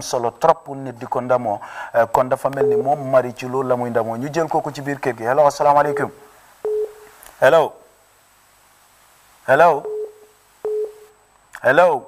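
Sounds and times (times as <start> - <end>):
man speaking: 0.0 - 6.4, 9.5 - 10.0
telephone beep: 2.6 - 3.0, 5.8 - 7.1, 9.8 - 11.1.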